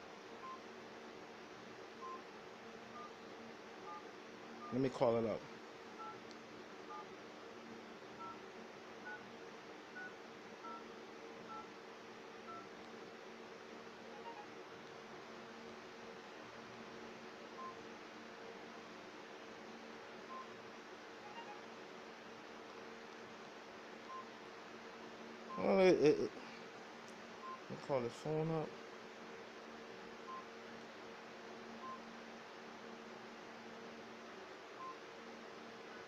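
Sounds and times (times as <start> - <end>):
faint steady hum: 0.0 - 36.0
phone keypad touch tones: 2.0 - 2.2, 6.0 - 6.2, 8.2 - 8.4, 10.0 - 10.8, 11.5 - 11.7, 14.2 - 14.5, 21.2 - 21.6.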